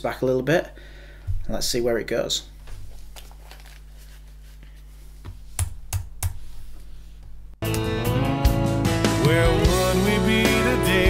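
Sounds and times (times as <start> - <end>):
headphones handling noise: 2.6 - 7.4.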